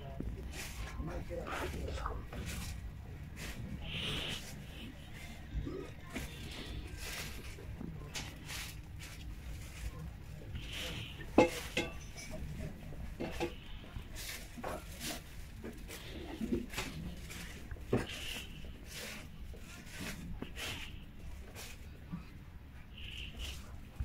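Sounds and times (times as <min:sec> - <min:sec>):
faint distant voices: 0:00.0 - 0:24.0
steady low hum: 0:00.0 - 0:24.0.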